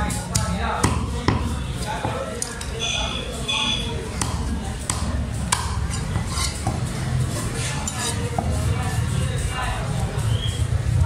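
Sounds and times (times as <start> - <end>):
cleaver clinking and scraping: 5.9 - 6.6, 7.6 - 8.3.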